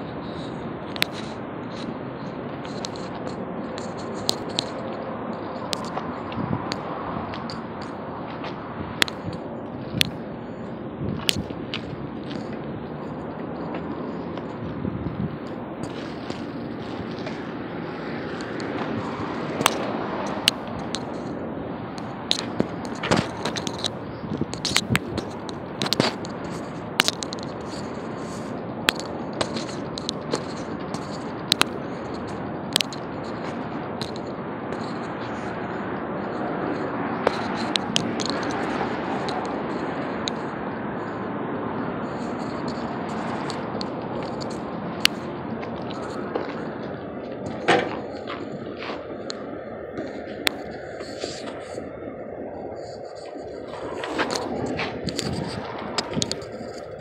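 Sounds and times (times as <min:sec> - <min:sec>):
outdoor background noise: 0:00.0 - 0:57.0
sharp irregular clicks and knocks: 0:00.2 - 0:10.6, 0:11.2 - 0:12.7, 0:18.3 - 0:35.5, 0:36.7 - 0:40.5, 0:42.1 - 0:51.8, 0:52.8 - 0:57.0.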